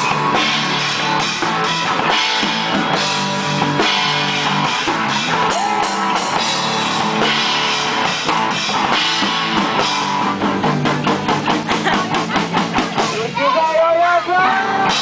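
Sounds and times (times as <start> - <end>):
fast drum beats: 0.0 - 15.0
live rock band playing: 0.0 - 15.0.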